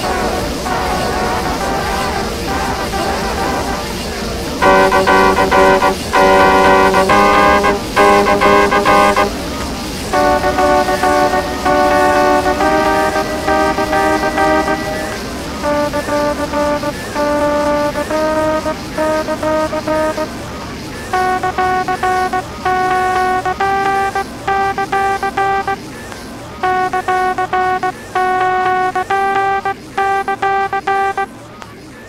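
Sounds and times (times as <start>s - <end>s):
trumpet playing simple tune: 0.0s - 3.9s, 4.6s - 9.4s, 10.1s - 20.4s, 21.1s - 25.8s, 26.6s - 31.3s.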